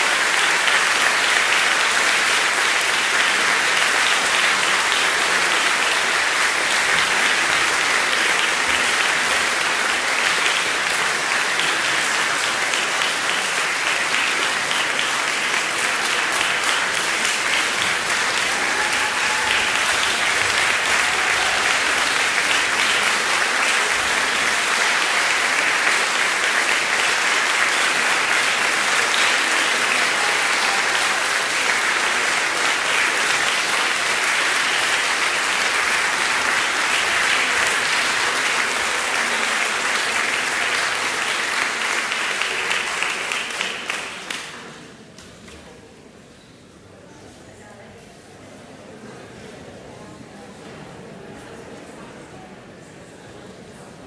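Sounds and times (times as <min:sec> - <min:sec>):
audience applauding: 0:00.0 - 0:44.8.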